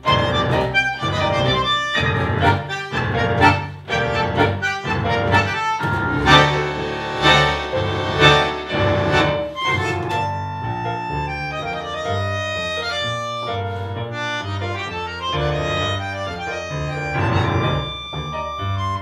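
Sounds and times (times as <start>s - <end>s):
bandoneon: 0.0s - 19.0s
double bass: 0.0s - 19.0s
piano: 0.0s - 19.0s.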